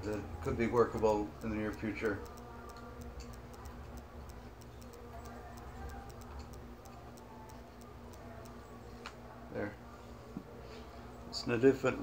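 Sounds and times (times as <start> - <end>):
faint light ticking: 0.0 - 9.2
low steady hum: 0.0 - 12.0.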